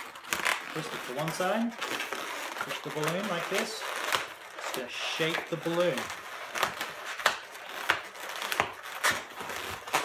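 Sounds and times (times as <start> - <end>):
balloons squeaking and rubbing: 0.0 - 10.0.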